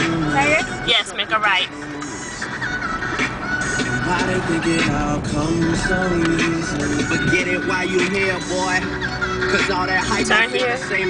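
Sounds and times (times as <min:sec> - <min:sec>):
car radio music: 0:00.0 - 0:11.0.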